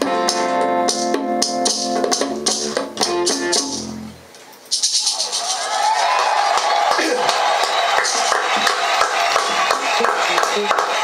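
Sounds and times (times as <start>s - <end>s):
band playing low notes: 0.0s - 4.2s
people clapping: 4.9s - 11.0s.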